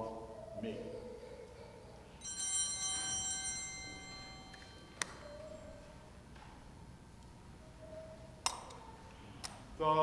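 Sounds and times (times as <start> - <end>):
altar bells ringing: 2.1 - 6.1.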